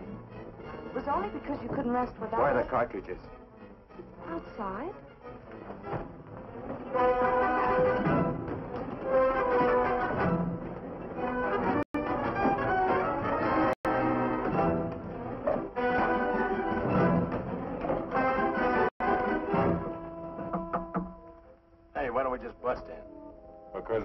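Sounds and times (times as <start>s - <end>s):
orchestral film score: 0.0s - 24.0s.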